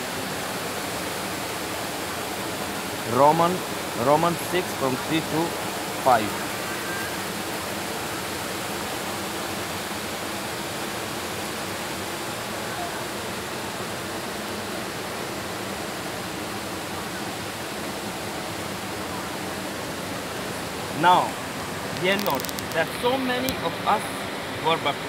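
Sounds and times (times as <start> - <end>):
steady rushing noise: 0.0 - 8.5.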